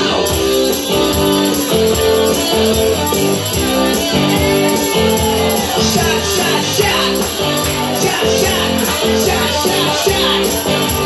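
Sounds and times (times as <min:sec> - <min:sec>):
rock backing track with guitar: 0:00.0 - 0:11.0.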